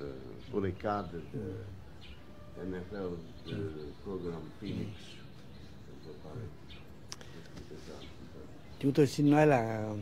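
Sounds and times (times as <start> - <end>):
man speaking: 0.0 - 1.8, 2.6 - 5.2.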